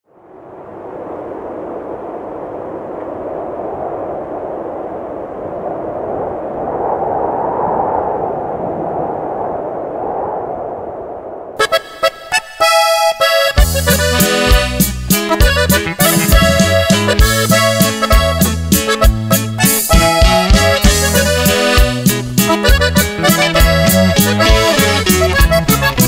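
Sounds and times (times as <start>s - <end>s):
steady rushing noise: 0.1s - 12.6s
band with drums and accordion: 11.6s - 26.0s.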